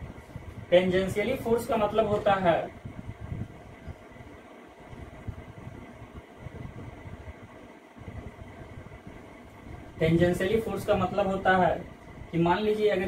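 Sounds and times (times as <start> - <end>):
faint steady hiss: 0.0 - 13.0
low background rumble: 0.0 - 13.0.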